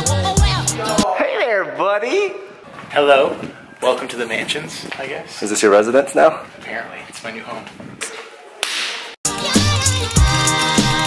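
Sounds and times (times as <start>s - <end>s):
background music with bass line: 0.0s - 1.1s, 9.2s - 11.0s.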